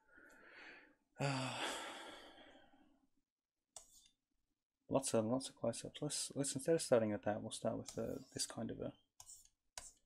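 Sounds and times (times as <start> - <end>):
man sighing: 1.2 - 2.4.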